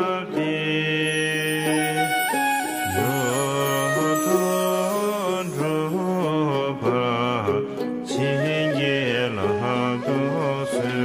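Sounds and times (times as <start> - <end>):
man chanting: 2.8 - 11.0.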